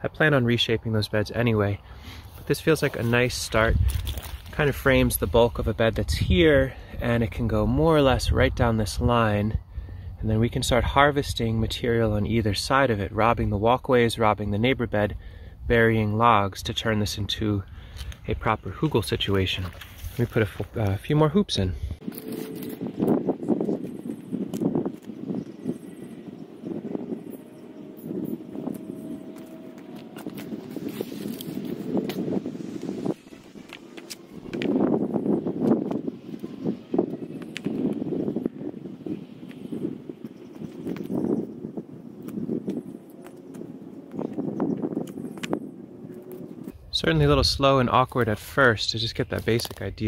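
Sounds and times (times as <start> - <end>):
rustling in brush: 2.1 - 4.7, 19.6 - 20.8, 28.6 - 35.3
footsteps in dry grass: 2.2 - 4.8, 19.6 - 20.8, 28.0 - 38.4.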